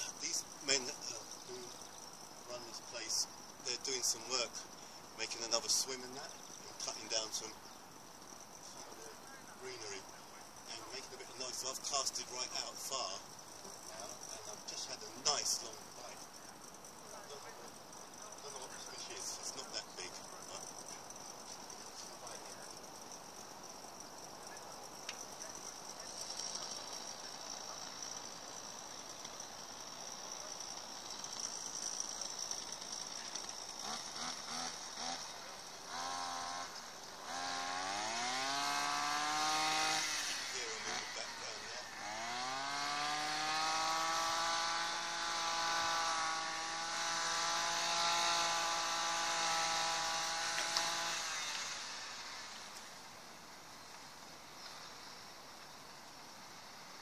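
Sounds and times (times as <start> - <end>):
small petrol engine revving: 0.0 - 57.0.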